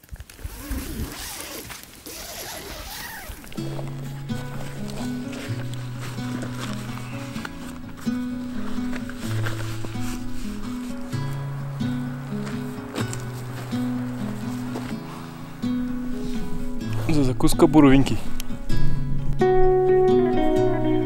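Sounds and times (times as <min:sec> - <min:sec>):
held low notes: 0:03.3 - 0:21.0
background music: 0:03.5 - 0:21.0.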